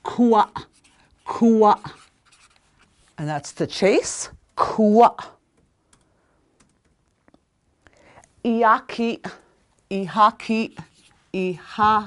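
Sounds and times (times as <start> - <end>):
woman speaking: 0.0 - 2.1, 3.2 - 5.4, 8.4 - 12.0.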